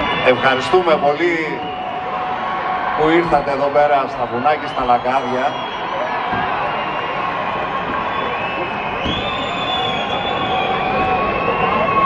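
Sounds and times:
long shrill whistle: 0.0 - 3.0, 4.6 - 7.2, 7.9 - 12.0
audience cheering: 0.0 - 12.0
crowd noise: 0.0 - 12.0.

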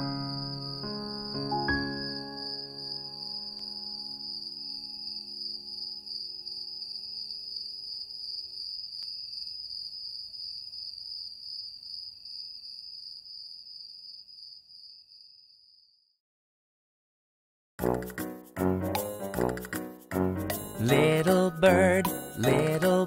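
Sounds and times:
crickets chirping: 0.0 - 16.0
held musical chord: 18.5 - 23.0.

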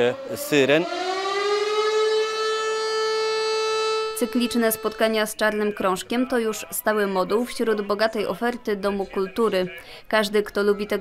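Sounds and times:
siren wailing: 0.0 - 5.4.

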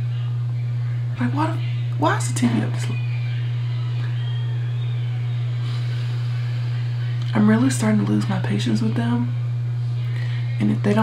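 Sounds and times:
loud low hum: 0.0 - 11.0
muffled television: 0.0 - 11.0.

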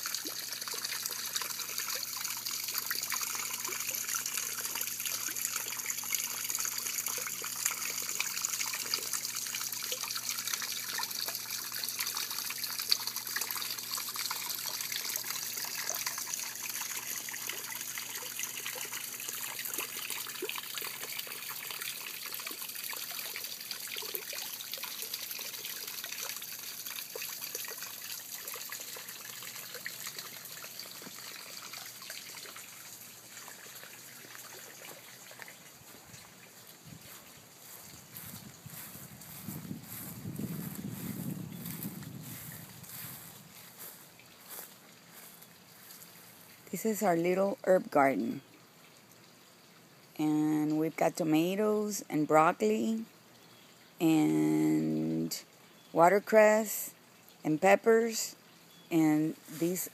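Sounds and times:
small fountain trickling: 0.0 - 59.9.

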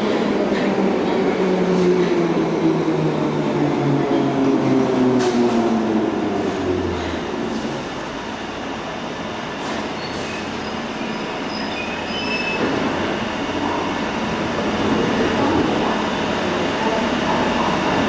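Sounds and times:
train doors sliding open: 4.1 - 8.0, 9.5 - 16.0
high brake squeals: 9.9 - 12.7.

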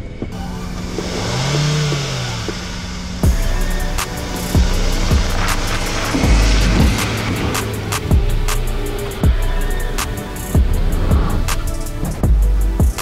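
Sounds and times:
car engine revving: 0.0 - 13.0
deep rumble of car rolling past: 0.1 - 12.8
background music with a beat: 0.2 - 13.0.

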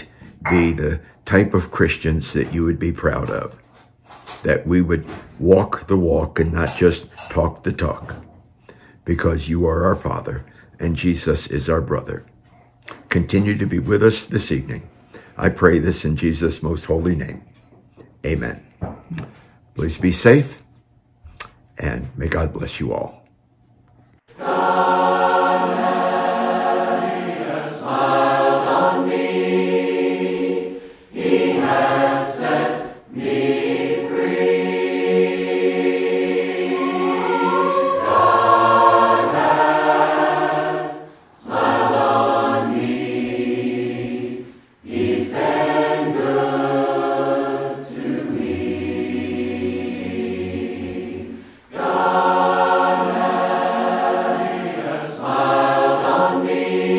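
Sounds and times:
choir singing a sustained chord: 24.3 - 56.9.

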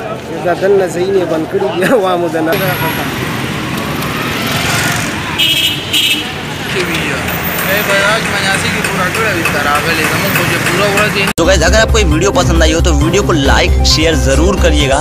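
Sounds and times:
vehicles passing: 0.0 - 13.5.

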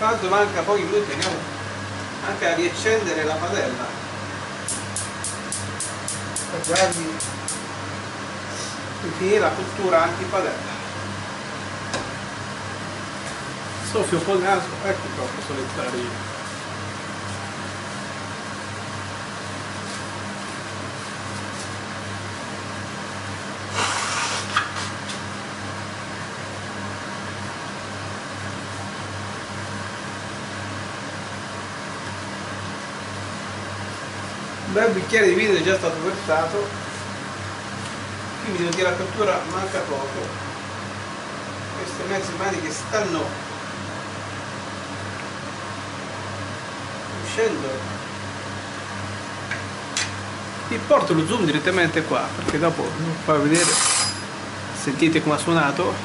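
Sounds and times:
gas hob spark igniter clicking: 4.6 - 7.6
person blowing nose: 23.7 - 24.6.

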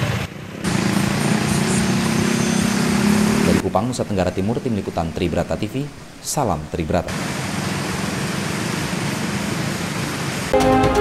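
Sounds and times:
traffic driving through flood water: 0.0 - 10.6
news theme music with synth: 10.6 - 11.0.

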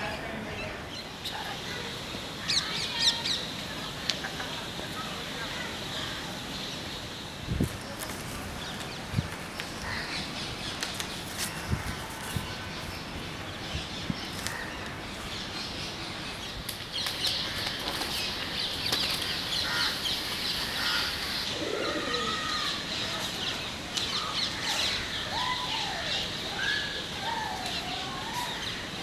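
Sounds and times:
birds chirping: 0.0 - 29.0.

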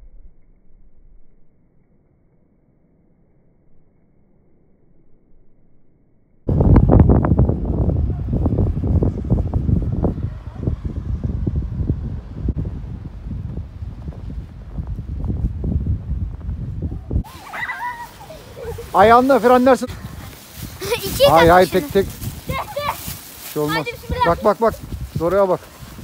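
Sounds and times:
wind and handling rumble on microphone: 6.5 - 17.4, 18.4 - 26.0.

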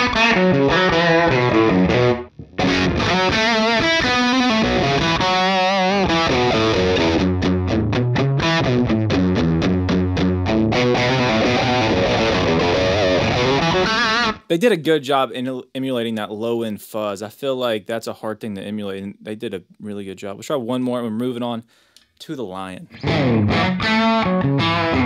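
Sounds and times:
overdriven electric guitar lead: 0.0 - 14.5, 22.9 - 25.0.

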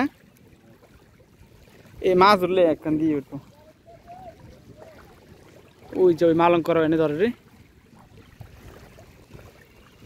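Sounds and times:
river water trickling and sloshing: 0.0 - 10.0.

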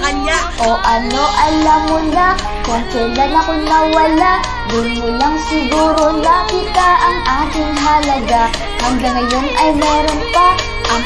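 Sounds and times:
backing track: 0.0 - 11.0
high-pitched singing: 0.0 - 11.0.

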